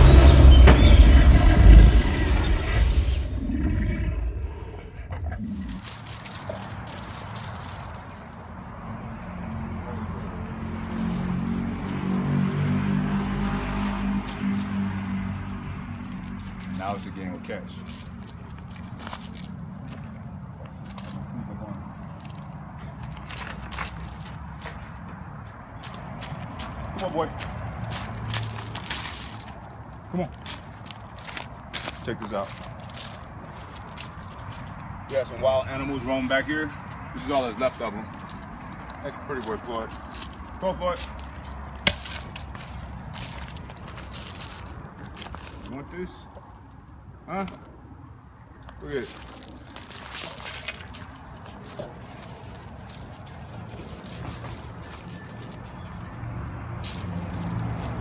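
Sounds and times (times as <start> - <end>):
musical tone: 0.0 - 3.5
sharp hit: 0.0 - 4.5
deep rumble: 0.0 - 5.8
footsteps crunching on gravel: 5.4 - 46.9, 48.6 - 58.0.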